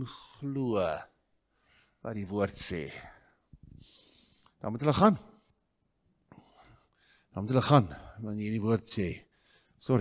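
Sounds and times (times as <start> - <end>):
man speaking into microphone: 0.0 - 1.2, 2.0 - 3.3, 4.6 - 5.4, 7.3 - 10.0.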